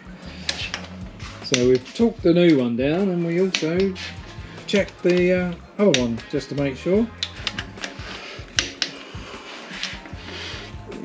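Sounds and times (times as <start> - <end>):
background music with bass line: 0.0 - 11.0
hand tools clicking and clinking: 0.3 - 6.3, 7.1 - 10.2.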